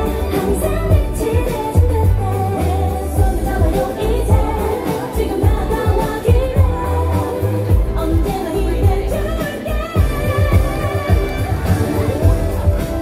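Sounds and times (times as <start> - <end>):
pop song with heavy bass beat: 0.0 - 13.0.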